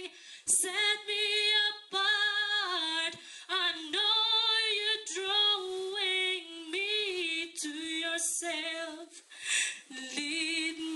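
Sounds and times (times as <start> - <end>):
woman singing unaccompanied: 0.0 - 9.2, 9.9 - 10.9.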